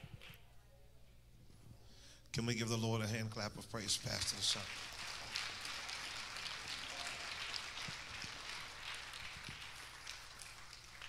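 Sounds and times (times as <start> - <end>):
congregation applauding: 3.7 - 11.0.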